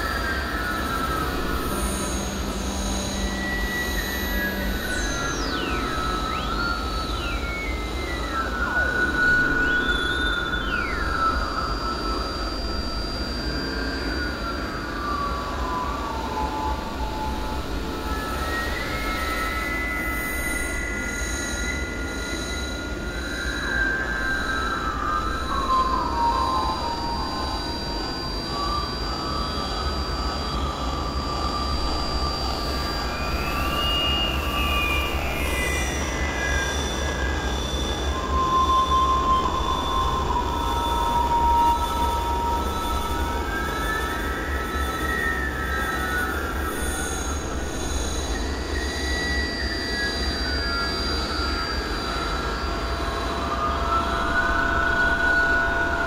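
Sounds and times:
sliding whistling tones: 0.1s - 12.4s, 23.2s - 56.0s.

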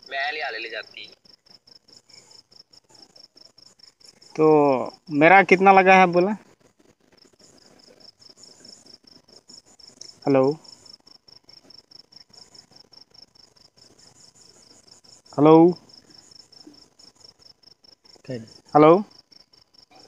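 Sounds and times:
cricket chirping: 0.0s - 20.0s.

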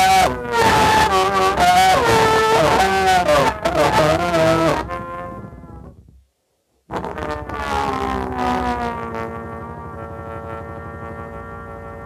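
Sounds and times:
moaning tones played on glass: 0.0s - 6.1s, 6.9s - 12.0s.

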